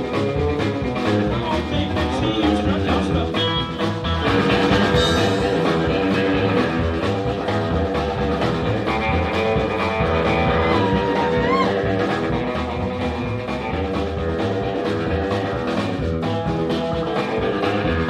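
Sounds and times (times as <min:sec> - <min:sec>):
bass guitar: 0:00.0 - 0:18.0
drum kit beat: 0:00.0 - 0:18.0
electric guitar: 0:00.0 - 0:18.0.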